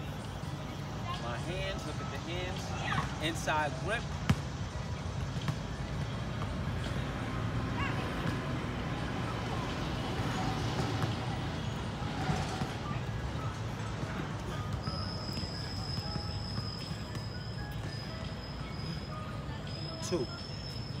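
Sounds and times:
faint music: 0:00.0 - 0:21.0.

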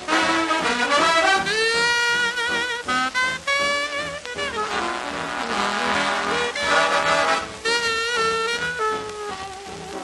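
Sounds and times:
swing band instrumental: 0:00.0 - 0:10.0.

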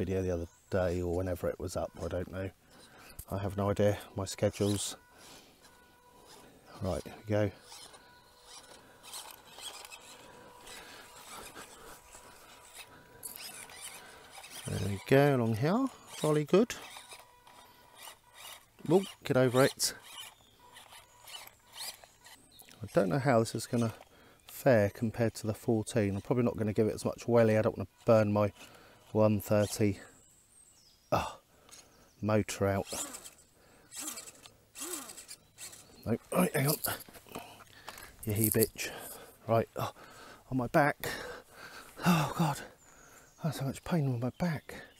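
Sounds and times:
wheels scrabbling on mud: 0:00.0 - 0:30.1, 0:32.5 - 0:40.3
small electric motor whirring: 0:00.5 - 0:30.1, 0:32.7 - 0:37.0
light clicks and scratches: 0:05.6 - 0:15.2, 0:16.0 - 0:24.6.

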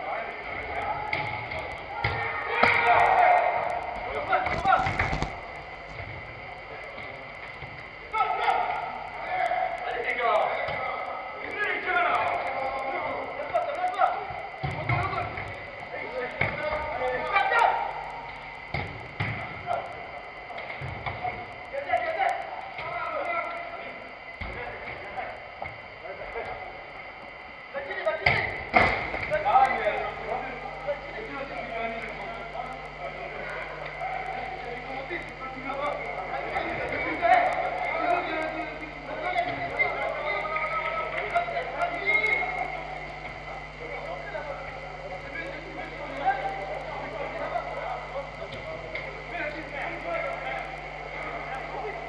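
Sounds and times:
players calling and shouting: 0:00.0 - 0:52.0.

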